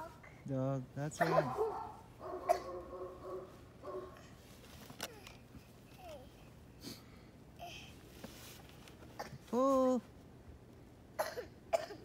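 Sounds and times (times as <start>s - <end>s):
short coughs: 1.2s - 1.6s, 2.4s - 2.8s, 11.2s - 12.0s.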